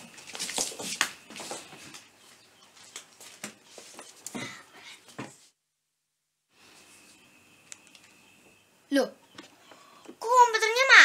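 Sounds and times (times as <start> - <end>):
light footsteps: 0.0 - 4.3
clothing rustle: 0.0 - 4.4.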